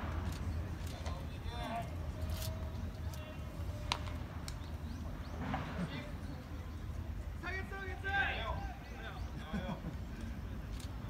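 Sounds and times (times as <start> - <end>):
faint distant music: 0.0 - 11.0.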